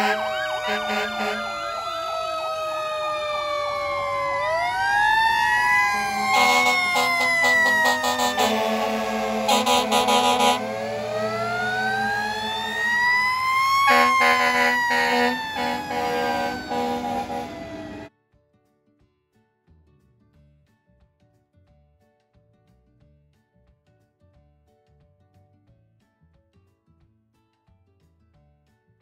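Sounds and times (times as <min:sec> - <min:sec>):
air horn blasts: 0:00.0 - 0:02.9, 0:04.0 - 0:18.1
fire engine sirens wailing: 0:00.0 - 0:18.1.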